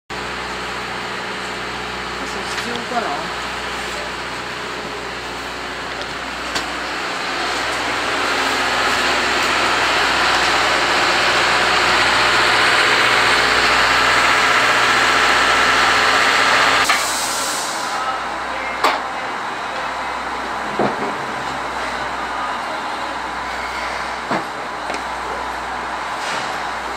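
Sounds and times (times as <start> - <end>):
loud steam hiss from locomotive: 7.3 - 18.2.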